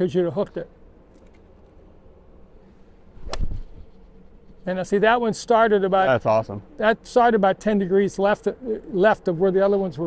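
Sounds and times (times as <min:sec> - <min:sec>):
golf club striking ball: 0:03.2 - 0:03.8.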